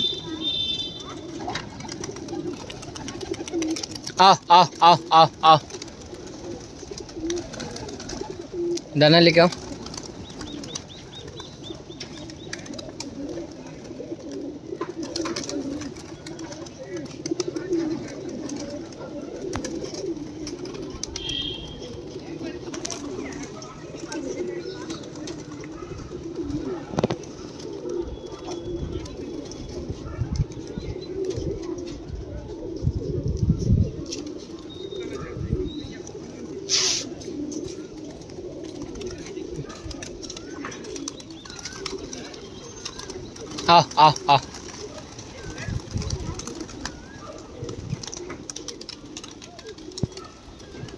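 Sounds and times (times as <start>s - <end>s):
pigeons cooing: 0.0s - 50.9s
wings flapping: 0.1s - 31.5s, 34.0s - 50.9s.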